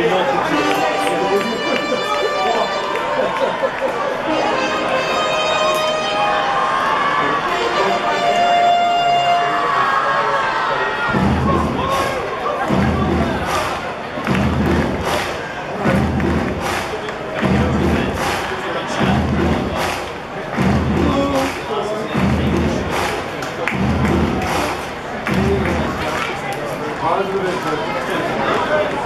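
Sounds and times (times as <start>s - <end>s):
crowd noise and voices: 0.0s - 29.0s
music with heavy stomping beat: 11.1s - 26.0s.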